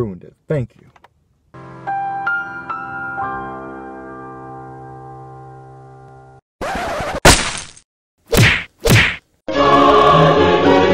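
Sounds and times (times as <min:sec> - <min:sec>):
whack sound effects sweeping down: 0:08.3 - 0:09.2
choral music: 0:09.5 - 0:10.9.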